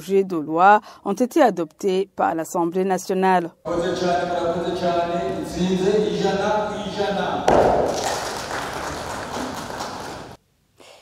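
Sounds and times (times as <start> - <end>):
applause: 7.5 - 10.4.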